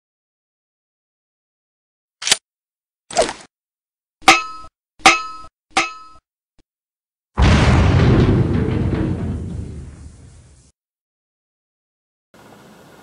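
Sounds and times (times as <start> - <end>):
metallic clanging hits: 4.2 - 6.2.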